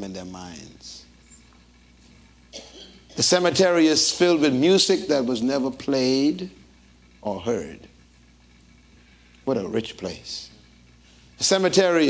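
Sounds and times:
steady low hum: 0.0s - 12.0s
person coughing: 2.5s - 3.2s.

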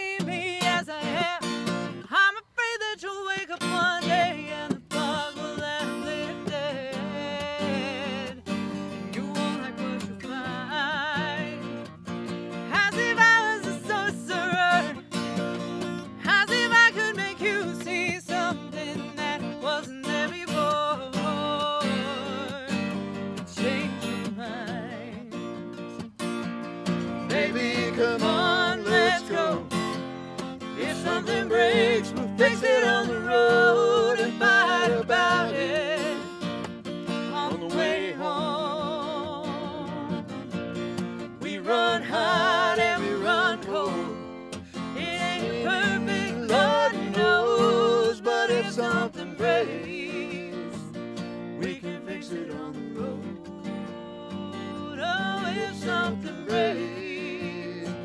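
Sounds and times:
person singing: 0.0s - 11.8s, 16.2s - 25.3s, 27.3s - 29.9s, 30.8s - 36.3s, 37.2s - 40.5s, 41.4s - 50.9s, 51.6s - 58.0s
acoustic guitar strumming: 0.0s - 58.0s.

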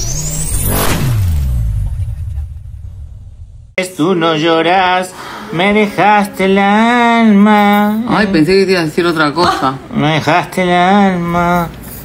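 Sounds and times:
deep bass tone gliding downward: 0.0s - 3.8s
low rumble: 0.0s - 3.8s.

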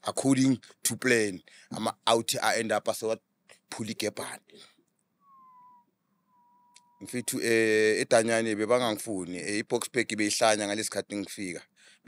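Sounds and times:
man speaking: 0.0s - 4.5s, 7.0s - 11.6s
faint thin high tone: 5.2s - 7.8s.

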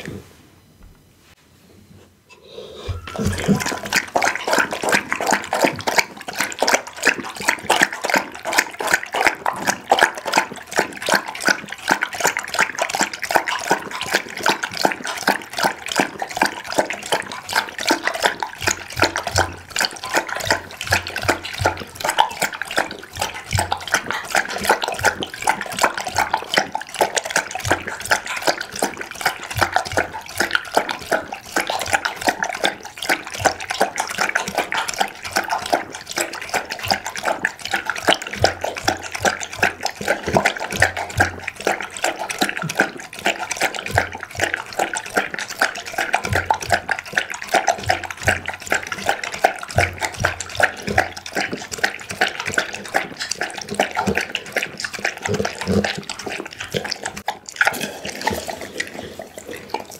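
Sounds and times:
dog lapping liquid from a bowl: 2.8s - 59.9s.

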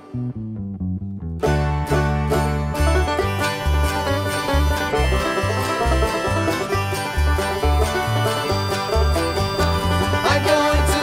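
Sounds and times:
acoustic guitar: 0.0s - 11.0s
electric bass: 0.0s - 11.0s
mandolin: 0.0s - 11.0s
banjo: 1.2s - 11.0s.

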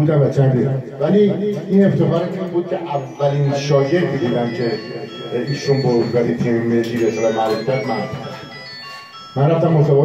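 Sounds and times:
man speaking into a microphone: 0.0s - 8.6s, 9.4s - 10.0s
electronic melody: 1.0s - 10.0s.

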